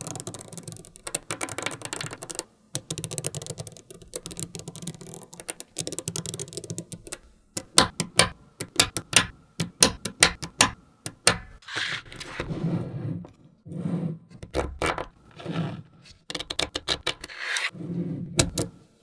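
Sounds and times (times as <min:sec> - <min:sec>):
magnetic balls clicking: 0:00.0 - 0:11.6, 0:18.4 - 0:18.8
magnetic balls snapping together: 0:00.0 - 0:11.6, 0:18.4 - 0:18.8.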